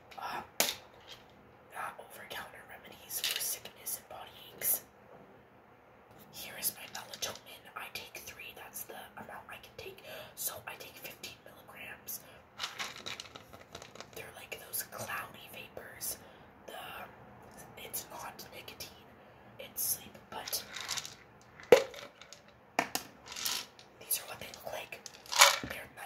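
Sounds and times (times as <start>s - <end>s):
woman whispering: 0.1s - 0.5s, 1.7s - 4.8s, 6.2s - 12.4s, 14.2s - 20.9s, 24.0s - 26.0s
plastic pill bottles clicking: 12.6s - 14.2s, 20.4s - 25.8s.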